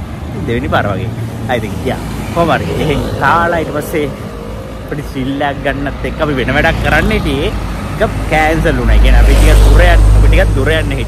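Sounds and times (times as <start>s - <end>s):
large vehicle passing rumble: 0.0s - 11.0s
road traffic: 0.0s - 11.0s.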